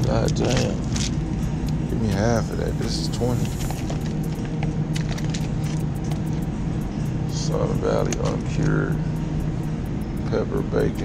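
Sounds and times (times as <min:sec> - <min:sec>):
refrigerated display case humming: 0:00.0 - 0:11.0.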